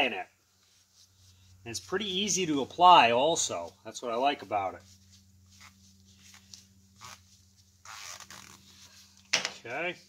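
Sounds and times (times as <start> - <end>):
paper towel rasping on syringe: 4.8 - 9.2.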